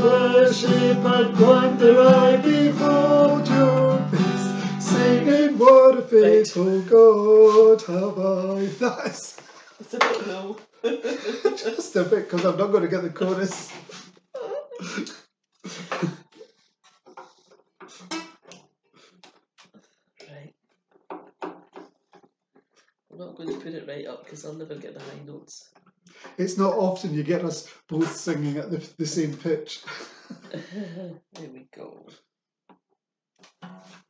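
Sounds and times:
soft acoustic guitar strum: 0.0 - 6.5, 33.6 - 34.0
man laughing softly: 8.3 - 12.4, 13.8 - 16.4, 29.7 - 31.0
woman laughing softly: 8.6 - 12.0, 13.9 - 16.5, 29.9 - 31.1.

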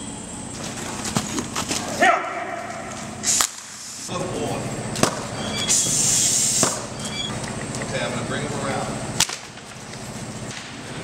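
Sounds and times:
whip crack: 1.8 - 3.7, 5.0 - 5.3, 6.6 - 6.9, 9.2 - 9.5.

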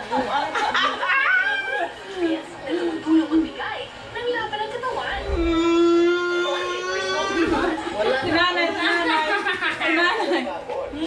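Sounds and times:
people laughing: 0.1 - 2.1, 7.4 - 10.6.

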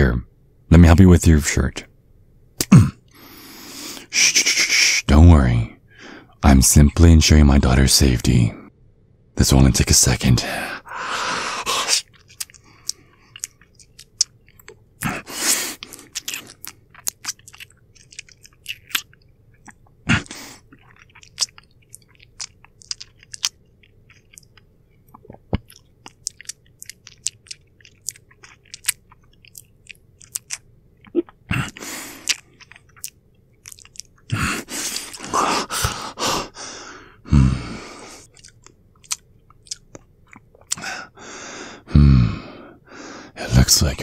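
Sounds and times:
breathy draws: 10.6 - 12.0, 34.3 - 38.3
sucking and chewing noises: 10.8 - 43.3
wet lip and tongue clicks: 12.0 - 35.3, 38.2 - 40.8.

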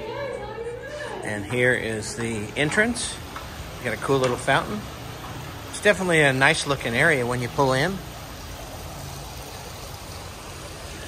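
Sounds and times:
fountain water splashing: 1.3 - 11.0.

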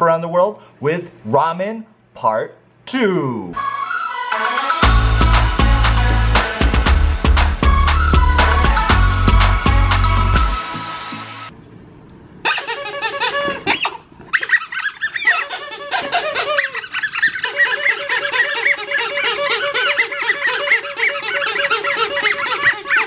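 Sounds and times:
squeaky dog toys squeaking: 12.4 - 23.0.

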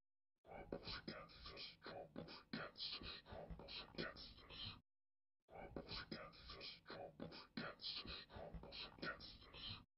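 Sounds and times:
faint whispering voice: 0.5 - 4.8, 5.5 - 9.9.

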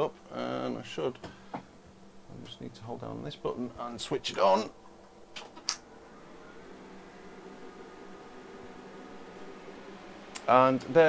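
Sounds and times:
equipment rack humming: 0.0 - 11.0.

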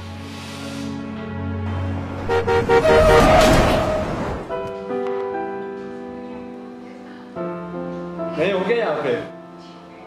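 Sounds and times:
car horn honking: 2.2 - 4.2.

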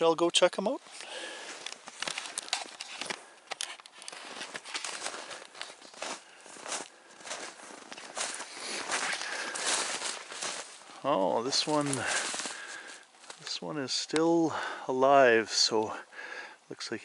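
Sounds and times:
footsteps crunching through snow: 0.8 - 13.6
twigs scraping against clothing: 0.8 - 13.6.

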